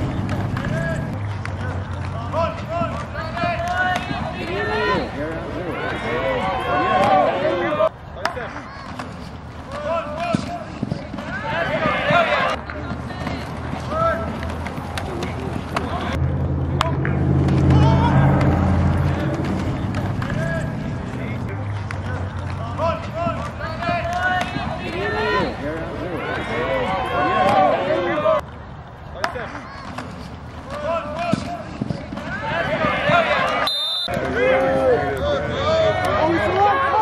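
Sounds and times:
people shouting and calling: 0.0 - 28.4, 29.2 - 37.0
low steady drone: 16.2 - 21.2.

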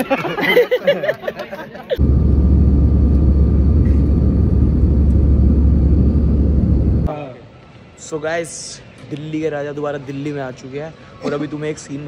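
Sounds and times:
engine and airflow rumble: 2.0 - 7.1
faint steady whine: 2.0 - 7.1.

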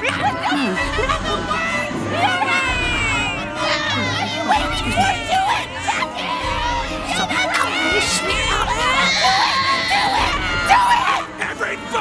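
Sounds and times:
woman screaming: 0.0 - 11.3
babies crying: 0.0 - 12.0.

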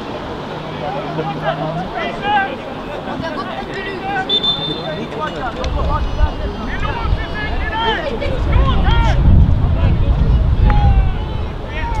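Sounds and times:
players shouting calls: 0.0 - 12.0
wind rumbling on microphone: 5.0 - 12.0.

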